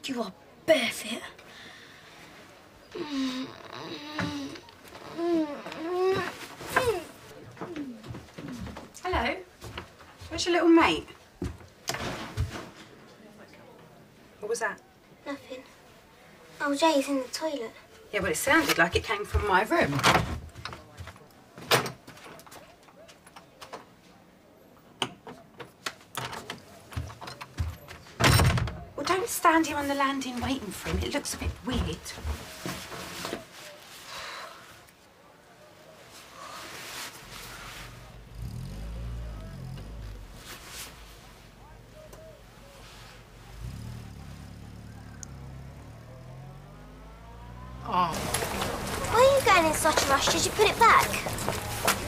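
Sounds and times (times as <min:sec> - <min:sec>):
clothes and bags rustling: 0:02.2 - 0:13.3, 0:29.0 - 0:44.8, 0:45.5 - 0:52.0.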